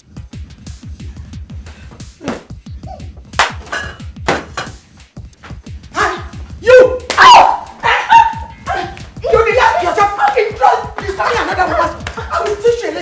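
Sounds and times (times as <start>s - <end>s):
music with steady beat: 0.0s - 13.0s
woman screaming: 5.9s - 13.0s.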